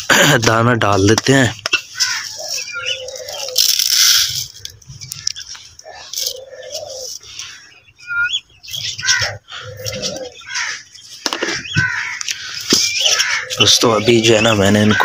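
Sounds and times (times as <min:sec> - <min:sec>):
small birds chirping: 0:00.0 - 0:15.0
doves cooing: 0:01.1 - 0:15.0.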